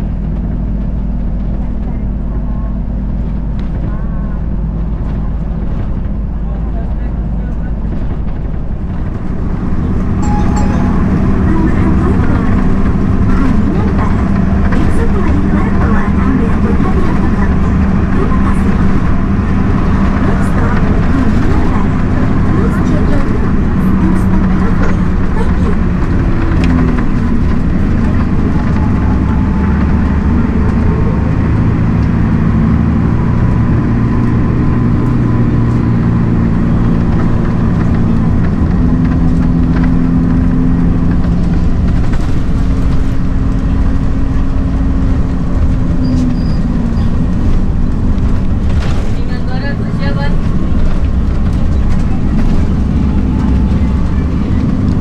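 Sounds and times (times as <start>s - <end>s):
bus engine drone: 0.0s - 55.0s
road noise: 0.0s - 55.0s.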